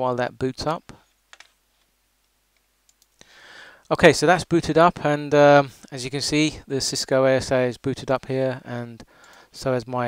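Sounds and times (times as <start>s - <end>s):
man speaking: 0.0s - 1.0s, 3.9s - 10.0s
faint clicks: 2.2s - 4.0s, 9.2s - 9.5s
short breath: 3.2s - 3.9s, 9.1s - 9.6s.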